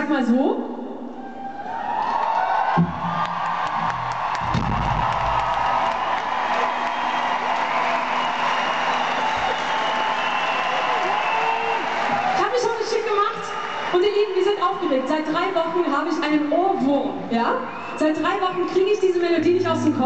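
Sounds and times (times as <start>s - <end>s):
crowd cheering: 1.2s - 16.6s, 17.5s - 20.0s.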